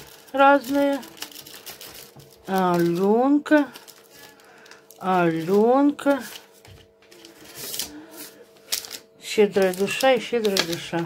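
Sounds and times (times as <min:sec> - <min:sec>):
faint steady hum: 0:00.0 - 0:11.0
plastic wrappers rustling: 0:00.0 - 0:11.0.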